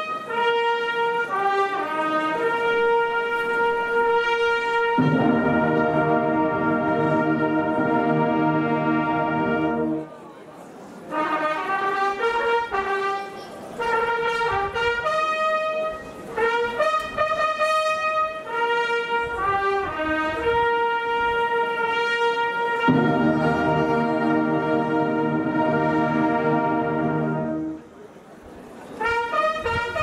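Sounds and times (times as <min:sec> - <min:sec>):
brass band playing slow music: 0:00.0 - 0:10.2, 0:11.0 - 0:28.2, 0:28.8 - 0:30.0.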